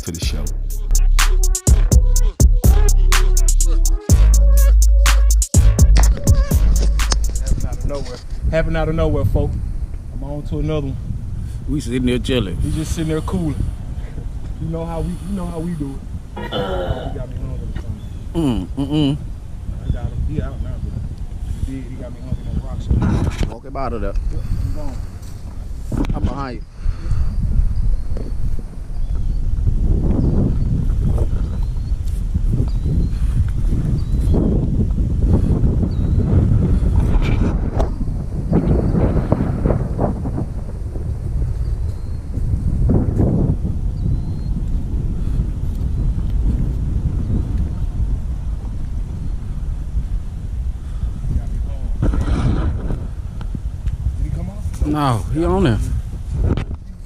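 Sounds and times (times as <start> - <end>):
wind buffeting microphone: 5.6 - 57.0.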